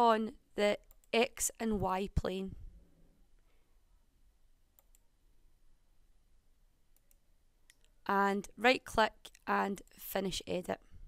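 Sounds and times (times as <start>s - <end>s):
computer mouse clicks: 0.8s - 1.2s, 4.7s - 5.1s, 6.9s - 7.9s.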